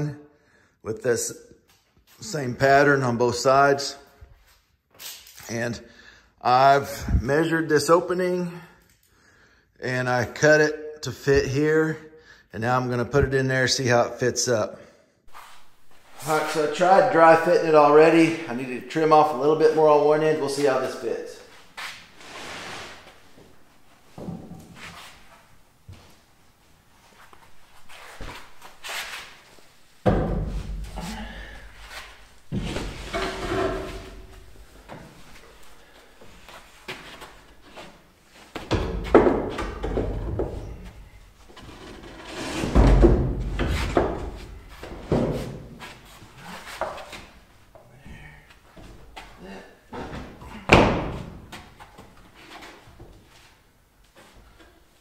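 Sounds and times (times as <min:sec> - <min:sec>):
wood scraping and sliding: 0:15.3 - 0:23.2, 0:31.8 - 0:38.0, 0:38.9 - 0:47.3.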